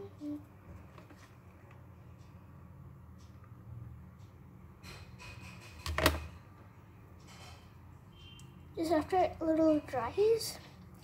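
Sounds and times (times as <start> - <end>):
handling noises of craft work: 0.6 - 1.8.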